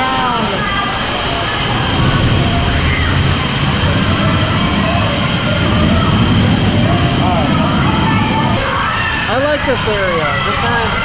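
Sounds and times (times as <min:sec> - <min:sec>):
faint voices: 0:00.0 - 0:11.0
waterfall rushing: 0:00.0 - 0:11.0.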